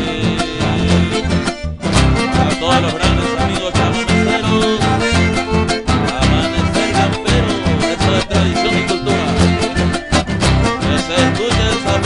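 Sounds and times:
acoustic guitar: 0.0s - 12.0s
electric bass: 0.0s - 12.0s.

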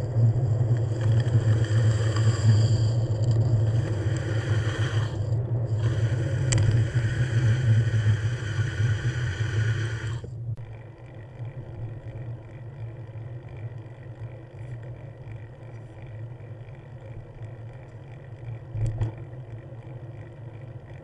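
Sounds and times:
low drone: 0.0s - 21.0s.

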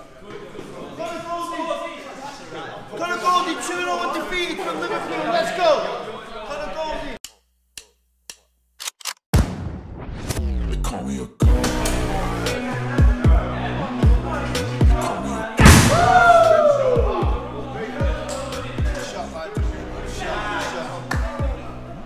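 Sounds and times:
men's voices talking and calling out: 0.0s - 7.2s, 11.7s - 22.0s
sharp clicks: 7.2s - 9.3s
loud electronic music: 10.5s - 21.7s.

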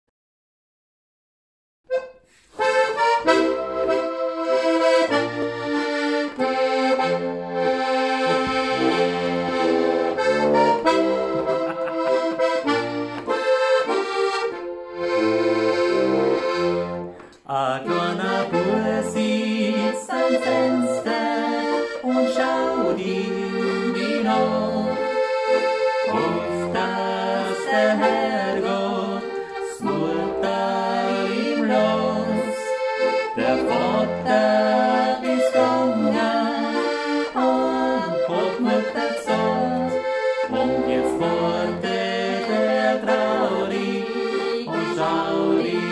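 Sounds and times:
button accordion playing folk tune: 1.9s - 45.9s.

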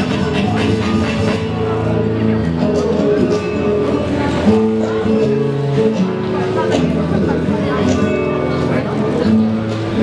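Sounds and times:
acoustic guitar playing: 0.0s - 10.0s.

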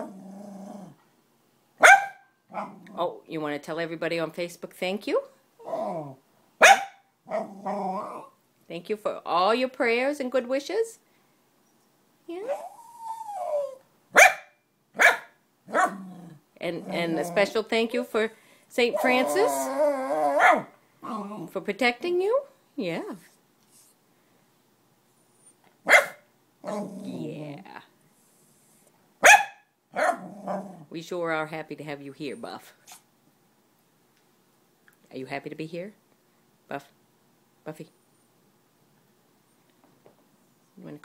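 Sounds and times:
small dog barking: 1.8s - 2.8s, 6.6s - 7.5s, 14.1s - 16.0s, 20.3s - 20.7s, 25.8s - 26.8s, 29.2s - 30.6s.

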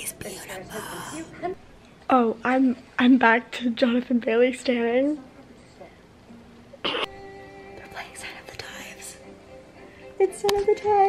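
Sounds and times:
whispery dialogue: 0.0s - 4.3s, 7.8s - 9.3s.

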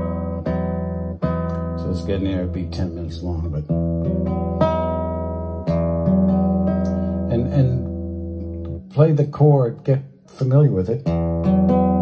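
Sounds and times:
classical guitar chords strummed: 0.0s - 12.0s.

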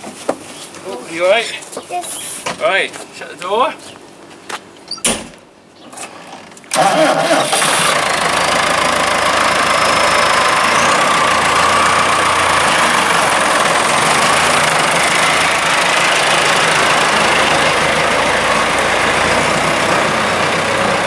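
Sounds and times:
tractor diesel engine running: 6.7s - 21.0s.

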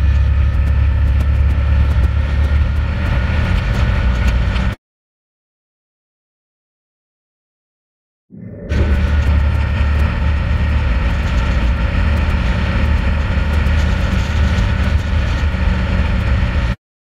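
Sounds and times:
snowmobile engine running: 0.0s - 4.8s, 8.5s - 16.8s.

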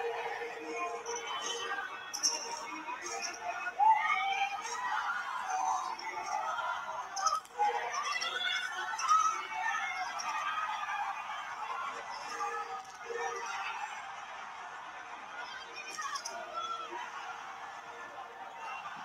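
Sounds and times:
music: 0.0s - 19.0s
overlapping voices: 0.0s - 19.0s.

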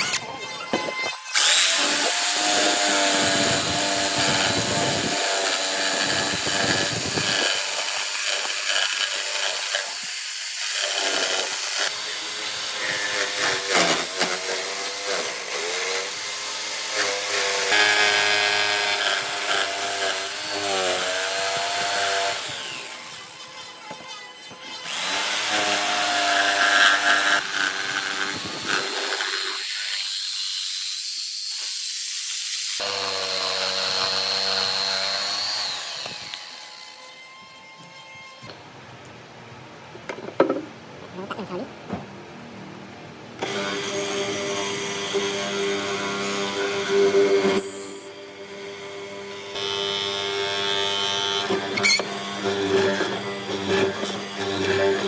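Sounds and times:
jigsaw cutting wood: 0.0s - 37.1s, 43.4s - 55.0s.

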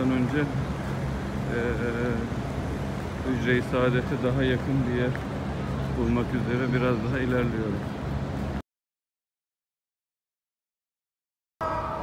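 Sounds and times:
low outdoor rumble: 0.0s - 8.6s
drawn-out voiced hesitation: 1.4s - 2.4s.

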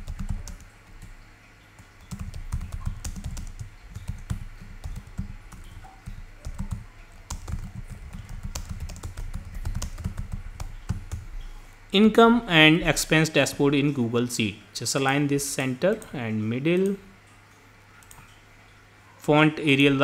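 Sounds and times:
typing on computer keyboard: 0.0s - 1.1s, 1.8s - 11.2s, 18.0s - 18.3s.

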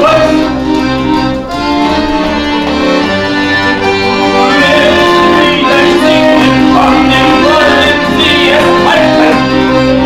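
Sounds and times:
sustained instrumental chords: 0.0s - 10.0s.

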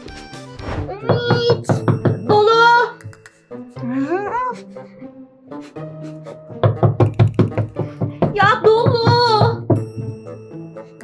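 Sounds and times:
background music: 0.0s - 11.0s
fist knocking rapidly on door: 6.6s - 9.9s.

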